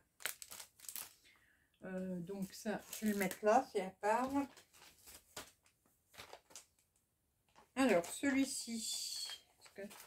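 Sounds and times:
plastic packaging rustling: 0.0s - 1.3s, 2.4s - 3.5s, 4.2s - 6.9s, 7.5s - 10.0s.

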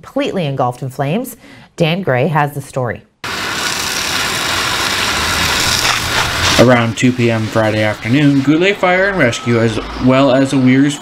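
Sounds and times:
water hissing from fire hose: 3.2s - 9.7s
fire engine low hum: 3.2s - 11.0s.

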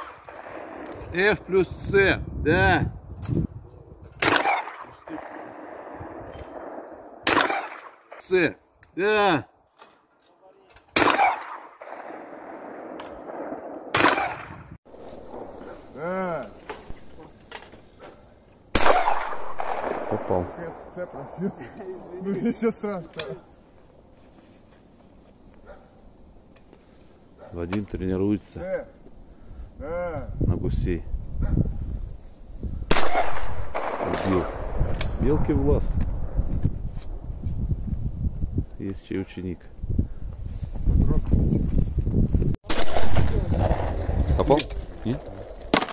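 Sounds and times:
shotgun shots: 0.0s - 1.4s, 4.2s - 8.3s, 10.9s - 14.8s, 18.7s - 21.3s, 32.9s - 35.4s, 42.6s - 44.6s, 45.7s - 45.9s.

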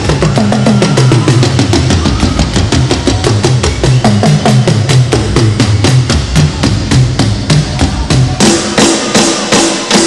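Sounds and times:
bass line: 0.0s - 10.0s.

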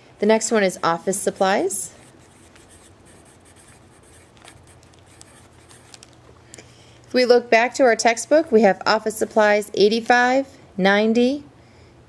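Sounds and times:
steady low hum: 0.0s - 9.9s
pen scratching on paper: 0.8s - 6.0s.

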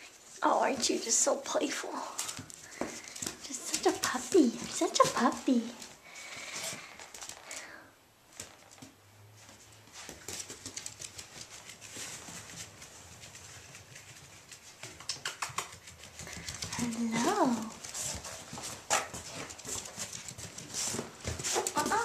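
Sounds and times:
puppy claws pattering on hard floor: 0.0s - 22.0s.

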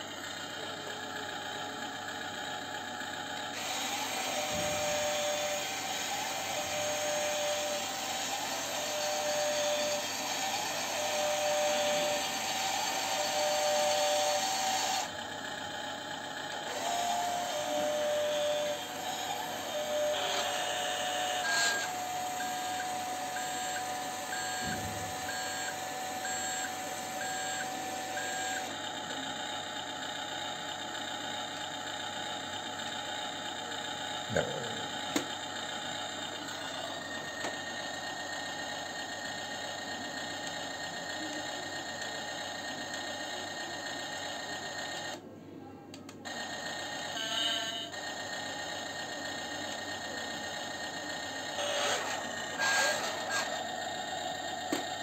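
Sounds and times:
toy truck motor whirring: 0.0s - 45.2s, 46.0s - 55.0s.

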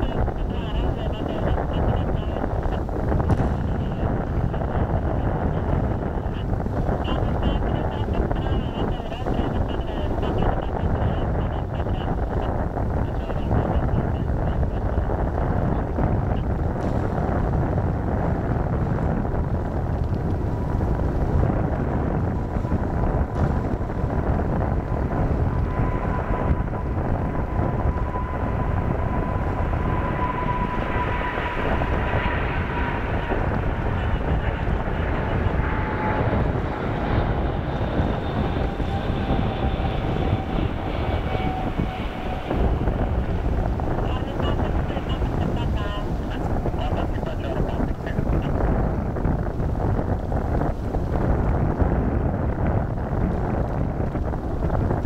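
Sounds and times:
jet engine whine: 0.0s - 55.0s
wind rumble on microphone: 0.0s - 55.0s.

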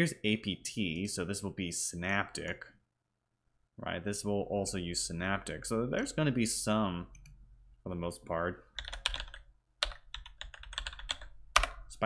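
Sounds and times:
computer keyboard typing: 8.8s - 11.9s.

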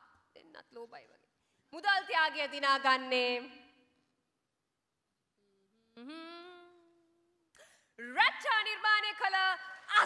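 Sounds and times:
person humming with closed lips: 5.4s - 7.6s.

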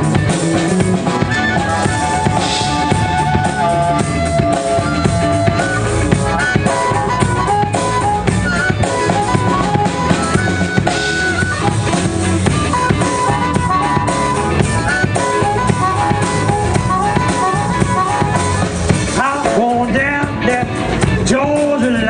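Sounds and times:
electric guitar: 0.0s - 22.0s
steady drum beat: 0.0s - 22.0s
harmonica playing short notes: 1.0s - 18.9s.

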